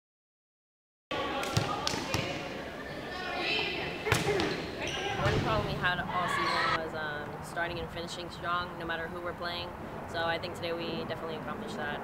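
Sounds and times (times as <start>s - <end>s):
players and spectators calling out: 1.1s - 6.8s
volleyball being hit: 1.3s - 2.5s, 4.0s - 4.6s.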